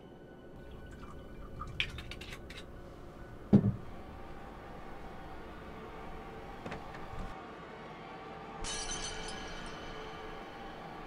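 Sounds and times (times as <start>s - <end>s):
glassware clinking: 8.6s - 10.8s.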